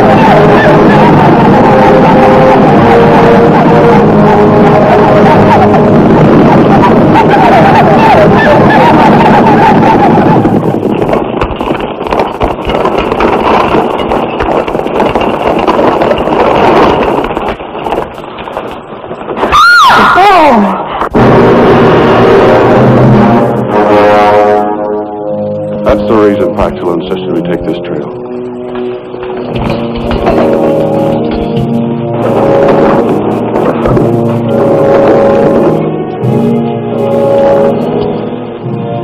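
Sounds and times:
long rising and falling cry: 0:00.0 - 0:10.6
many voices yelling: 0:00.0 - 0:10.6
orchestral music: 0:00.0 - 0:10.9, 0:21.1 - 0:39.0
mounted charge din: 0:00.0 - 0:38.8.

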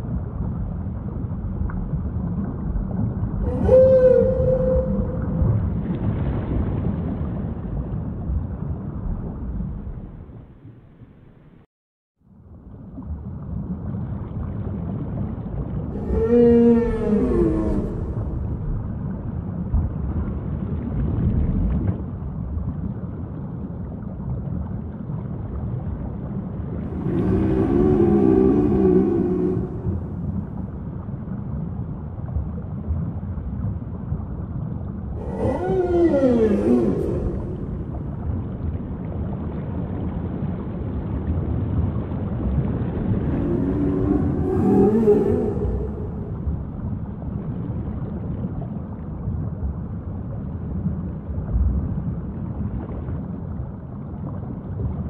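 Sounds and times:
whale song calls: 0:03.3 - 0:05.9, 0:15.9 - 0:19.1, 0:26.8 - 0:30.9, 0:35.1 - 0:38.5, 0:43.0 - 0:47.2.

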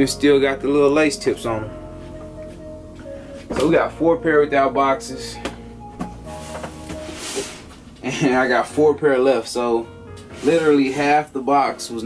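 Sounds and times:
soft instrumental music: 0:00.0 - 0:12.0
cardboard scraping rustle: 0:06.3 - 0:07.9, 0:10.3 - 0:11.2.

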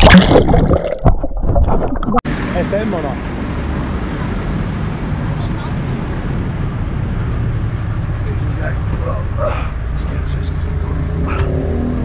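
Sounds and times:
vehicle engine rumble: 0:01.4 - 0:12.0
street traffic: 0:02.3 - 0:12.0.

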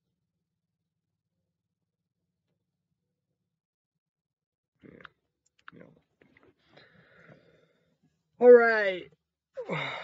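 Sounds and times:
soft mouth noises: 0:04.8 - 0:07.4.

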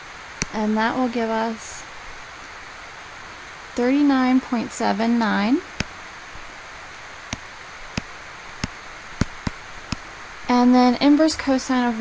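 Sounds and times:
background hiss: 0:00.0 - 0:12.0
stylus tapping a tablet: 0:07.3 - 0:10.1.

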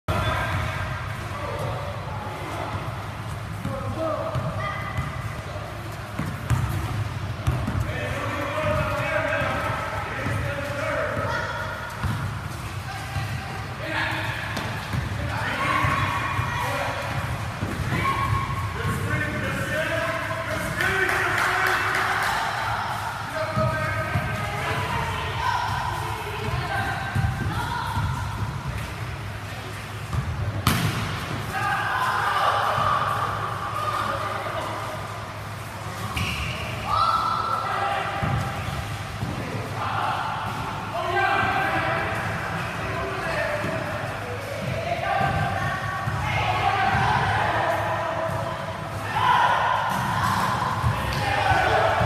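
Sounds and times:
basketballs bouncing on gym floor: 0:02.5 - 0:19.7, 0:23.4 - 0:29.2, 0:30.0 - 0:31.5, 0:38.1 - 0:39.7, 0:41.4 - 0:47.5, 0:49.9 - 0:52.0.

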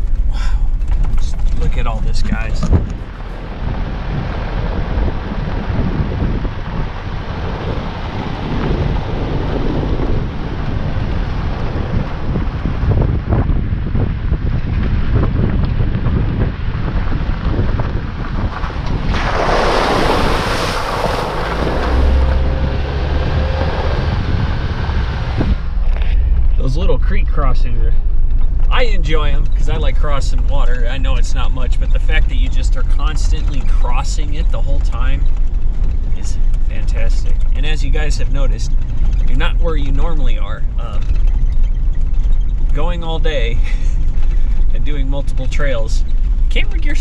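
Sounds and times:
car engine: 0:00.0 - 0:47.0
tyres rumbling on gravel: 0:00.0 - 0:47.0
wind on microphone: 0:00.0 - 0:47.0
car splashing through water: 0:18.3 - 0:25.8.

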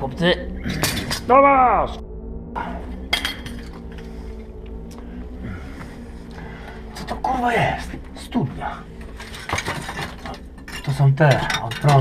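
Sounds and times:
steady low hum: 0:00.0 - 0:12.0
hard objects clinking: 0:09.0 - 0:12.0.

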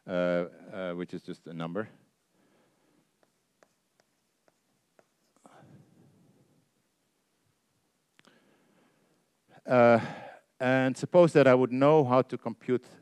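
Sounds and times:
chalk tapping on blackboard: 0:03.1 - 0:05.4.

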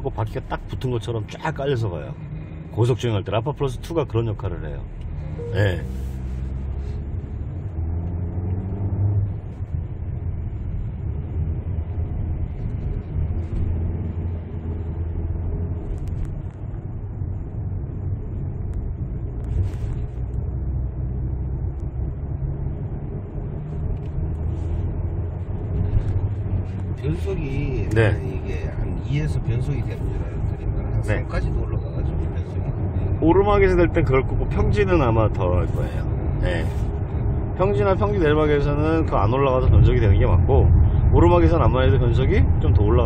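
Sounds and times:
car engine and tyre rumble: 0:00.0 - 0:43.0.

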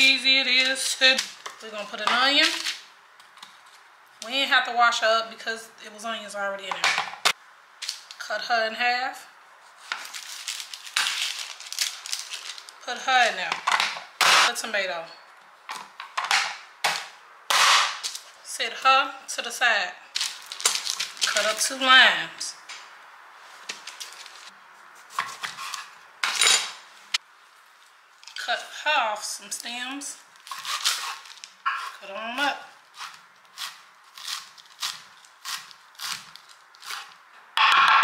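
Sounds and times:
utensils clattering on countertop: 0:26.2 - 0:26.8
knife cutting tomato on paper: 0:30.5 - 0:37.2.

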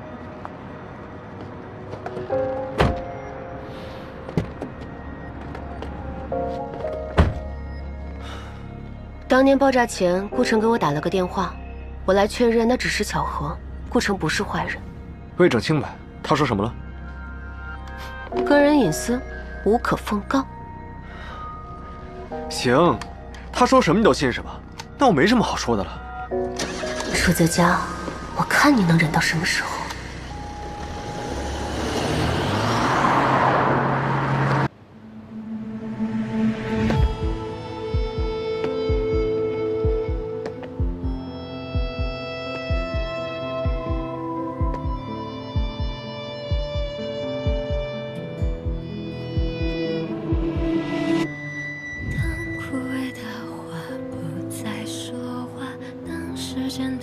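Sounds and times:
car engine and road noise: 0:00.0 - 0:08.2, 0:26.4 - 0:39.4
background music with held notes: 0:00.0 - 0:31.8, 0:35.0 - 0:57.0
car door shutting: 0:02.2 - 0:03.2, 0:06.8 - 0:07.5.

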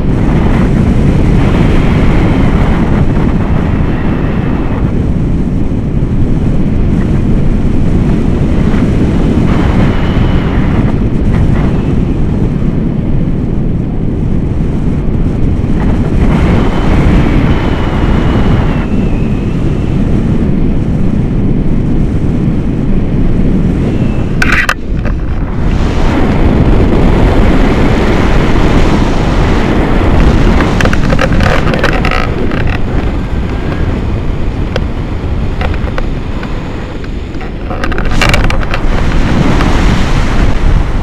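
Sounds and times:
wind rushing over microphone: 0:00.0 - 0:41.0.

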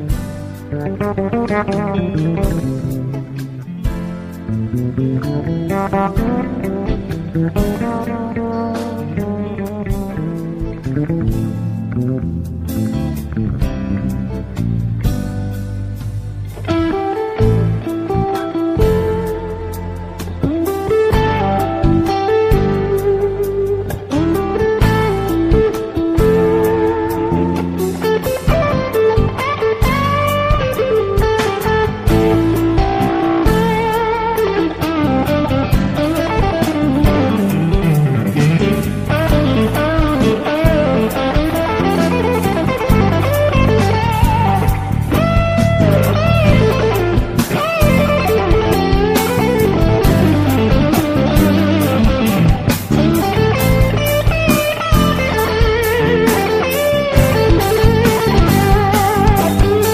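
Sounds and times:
blues-rock electric guitar music: 0:00.0 - 0:59.9.

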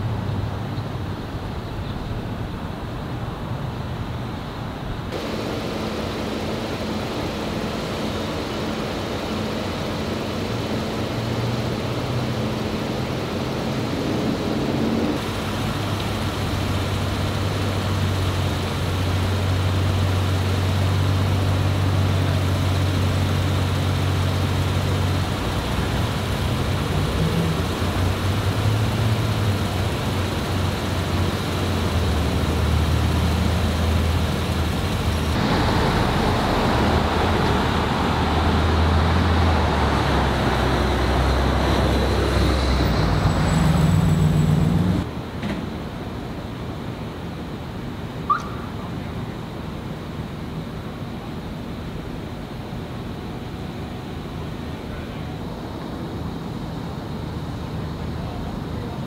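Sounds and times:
traffic noise: 0:00.0 - 0:59.0
vehicle engines idling: 0:00.0 - 0:59.0.

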